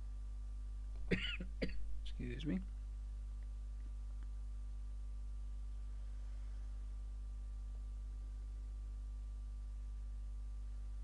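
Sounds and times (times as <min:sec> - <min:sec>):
man clearing his throat: 0:01.1 - 0:01.9
man coughing: 0:01.1 - 0:01.9.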